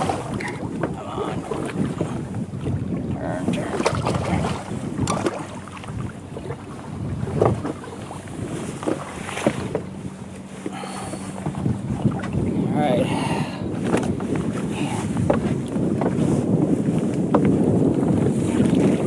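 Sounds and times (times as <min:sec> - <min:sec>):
knocks and splashes: 0:00.0 - 0:12.6, 0:13.7 - 0:16.3
water slapping boat hull: 0:00.0 - 0:19.0
wind buffeting microphone: 0:00.0 - 0:19.0.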